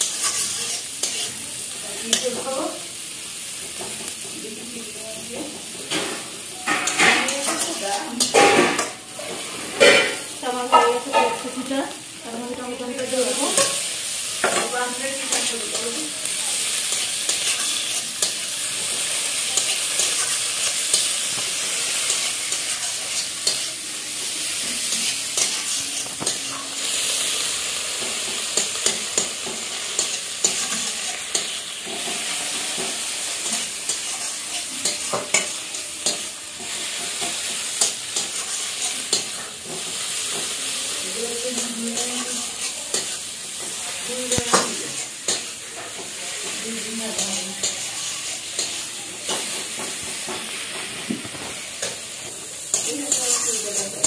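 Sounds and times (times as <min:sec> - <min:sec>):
spatula scraping pan: 0:00.0 - 0:01.4, 0:06.6 - 0:11.8, 0:12.8 - 0:54.0
onions sizzling in oil: 0:00.0 - 0:54.0.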